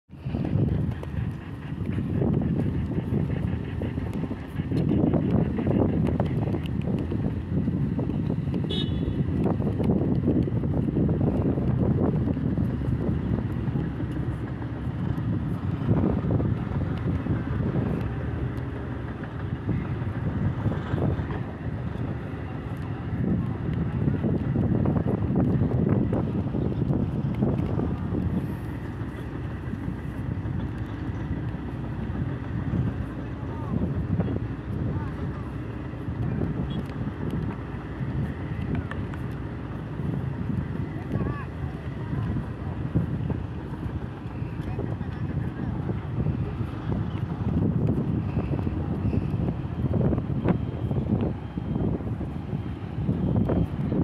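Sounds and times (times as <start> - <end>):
crane diesel engine running: 0.1 - 54.0
wind on microphone: 0.1 - 54.0.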